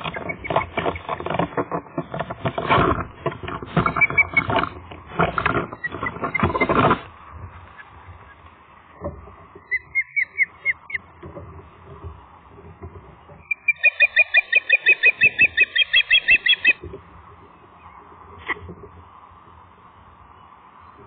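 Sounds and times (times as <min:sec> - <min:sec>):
wings flapping close: 0:00.0 - 0:07.1.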